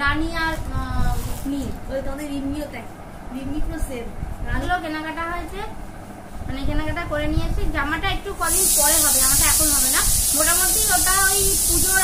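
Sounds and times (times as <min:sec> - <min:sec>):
woman talking: 0:00.0 - 0:05.8, 0:06.4 - 0:12.0
steady high hiss: 0:08.2 - 0:12.0.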